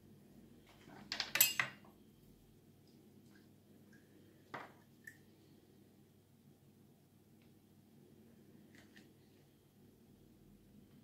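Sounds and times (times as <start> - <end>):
metal spoon clinking dishes: 1.2 - 1.8.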